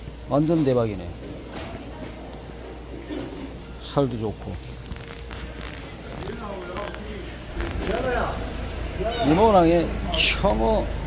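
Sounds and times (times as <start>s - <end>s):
background voices talking: 0.4s - 11.0s
hall noise: 4.6s - 11.0s
low rumble: 5.8s - 10.2s.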